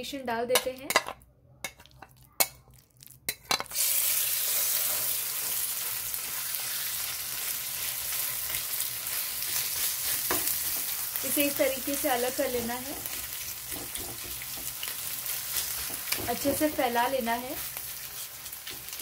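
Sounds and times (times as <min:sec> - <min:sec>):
fish sizzling in hot oil: 0:03.6 - 0:19.0
spatula tapping pan: 0:12.6 - 0:14.9.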